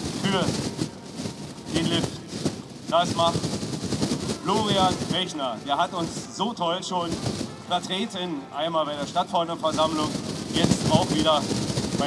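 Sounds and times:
crowd talking low: 0:00.0 - 0:12.0.

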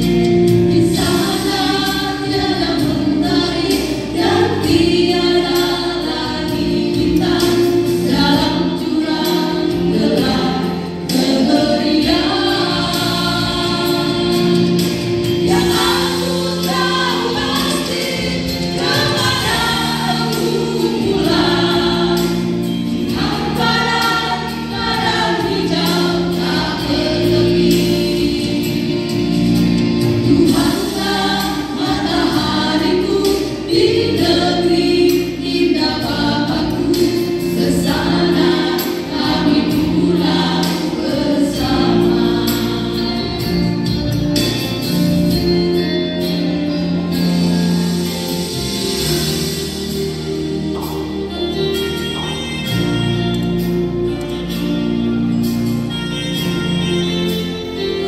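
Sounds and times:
women singing in harmony: 0:00.0 - 0:54.8.

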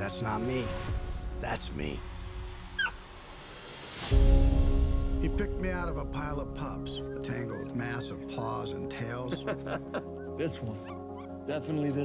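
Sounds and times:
puppy whimpering: 0:02.8 - 0:03.0, 0:10.8 - 0:11.4.

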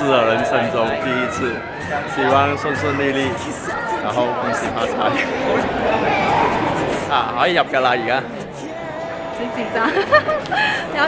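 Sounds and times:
people talking and chattering: 0:00.0 - 0:11.0.

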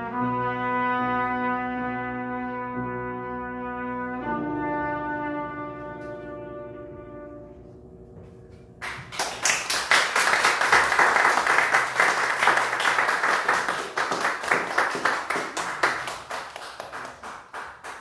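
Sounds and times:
trumpet note: 0:00.0 - 0:08.2
audience clapping: 0:08.8 - 0:18.0.

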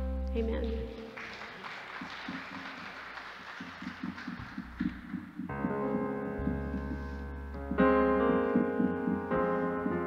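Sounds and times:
soft hazy band music: 0:00.0 - 0:01.1, 0:05.4 - 0:10.0.

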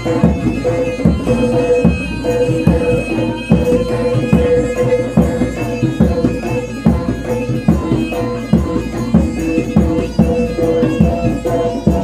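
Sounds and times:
low drum beats: 0:00.0 - 0:12.0
reedy wind instrument melody: 0:00.0 - 0:12.0.

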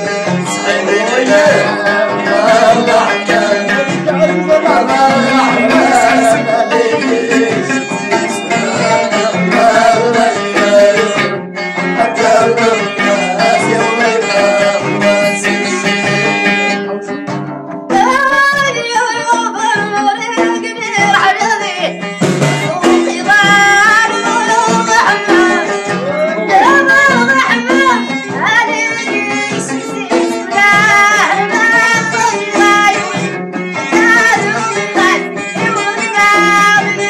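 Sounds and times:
solo voice singing: 0:00.0 - 0:11.4
frame drums beating: 0:00.0 - 0:18.8, 0:21.0 - 0:37.0
plucked lute: 0:00.0 - 0:37.0.

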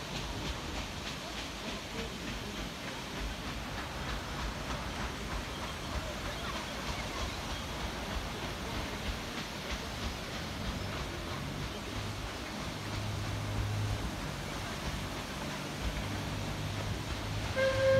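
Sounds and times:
paddle wheels and engine wash: 0:00.0 - 0:17.9.

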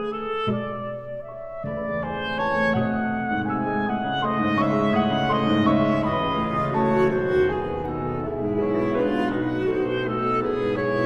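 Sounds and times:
cello: 0:00.0 - 0:11.0
clarinet: 0:00.0 - 0:11.0
piano: 0:00.0 - 0:11.0.

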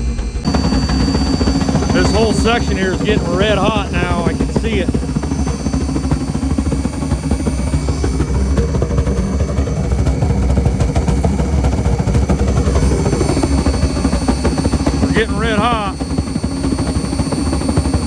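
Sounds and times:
faint high whine: 0:00.0 - 0:18.0
oil burner rumbling: 0:00.0 - 0:18.0.

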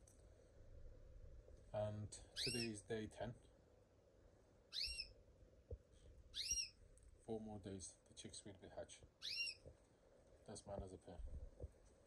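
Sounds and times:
canary whistled call: 0:02.4 - 0:02.7, 0:04.7 - 0:05.1, 0:06.4 - 0:06.7.

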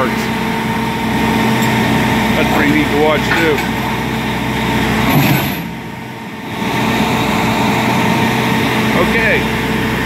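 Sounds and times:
hydraulic crane working: 0:00.0 - 0:10.0
truck engine running: 0:00.0 - 0:10.0.

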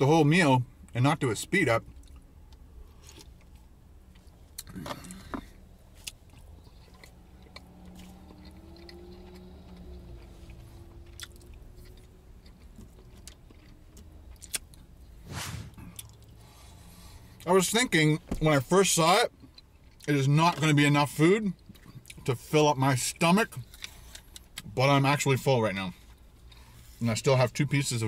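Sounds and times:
man chewing food: 0:01.9 - 0:17.4, 0:19.4 - 0:20.1.

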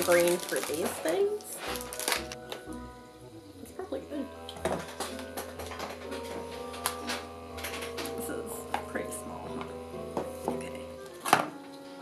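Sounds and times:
candy packaging clicking and rattling: 0:00.0 - 0:02.6, 0:04.5 - 0:08.2.

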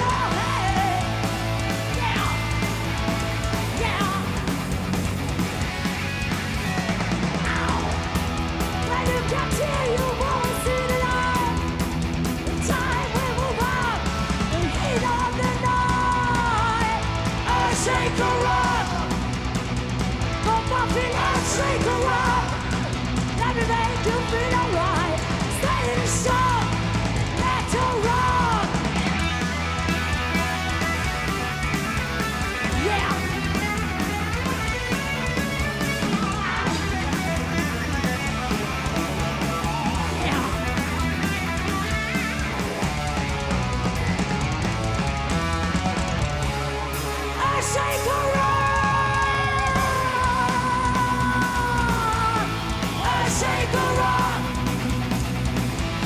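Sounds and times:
bass guitar: 0:00.0 - 0:56.0
distorted electric guitars: 0:00.0 - 0:56.0
drums: 0:00.0 - 0:56.0
wavering guitar lead line: 0:00.0 - 0:56.0.

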